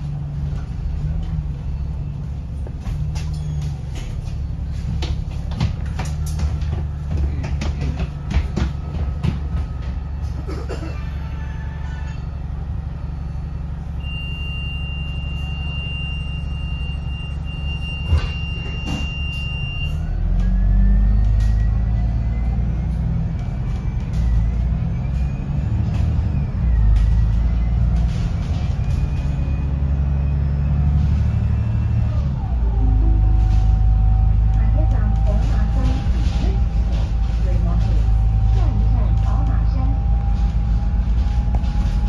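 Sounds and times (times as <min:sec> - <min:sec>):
bus engine rumble: 0:00.0 - 0:42.0.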